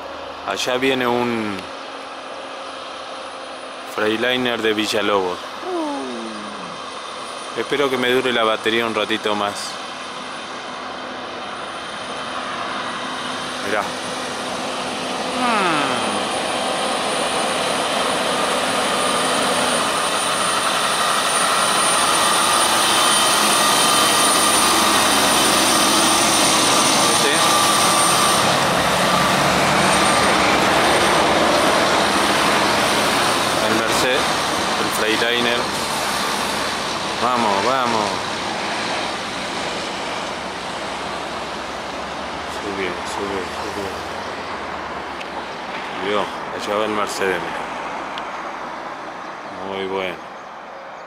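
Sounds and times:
high whine: 3.9 - 46.3
truck passing with roar: 13.4 - 20.1, 21.4 - 50.2.

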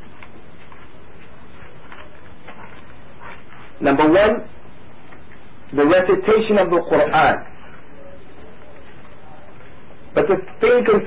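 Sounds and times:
man speaking loudly: 3.8 - 4.5, 5.7 - 7.5, 10.2 - 11.0.

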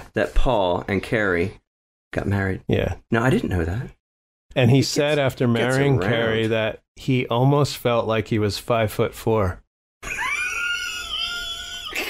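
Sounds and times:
breathy laughter: 10.0 - 12.0.

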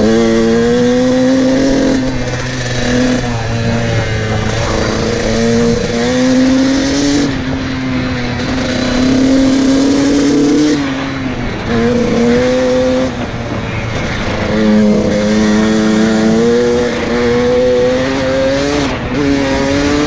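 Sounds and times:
dirt bike engine: 0.0 - 20.0.

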